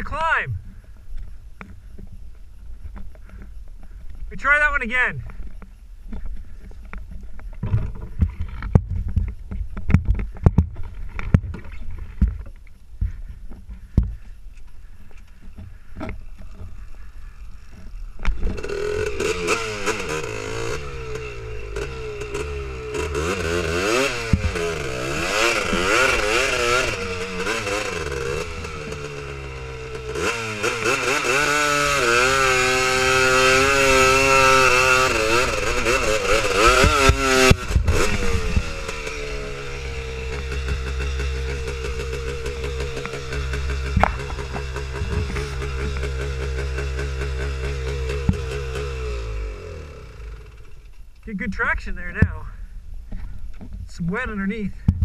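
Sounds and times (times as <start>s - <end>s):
engine idling: 2.6s - 54.9s
quad engine revving: 16.5s - 52.6s
engine knocks: 33.0s - 51.1s.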